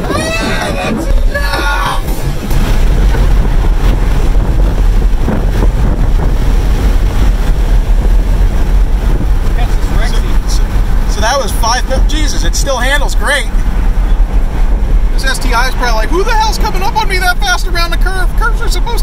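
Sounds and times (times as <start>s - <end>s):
people whooping: 0.0s - 2.1s
car cabin road and engine rush: 0.0s - 19.0s.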